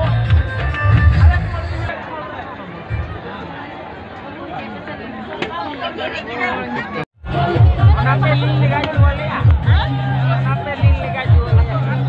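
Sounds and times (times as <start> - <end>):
music with heavy bass beats: 0.0 - 1.9, 7.2 - 12.0
crowd voices: 0.0 - 12.0
people chattering: 0.0 - 12.0.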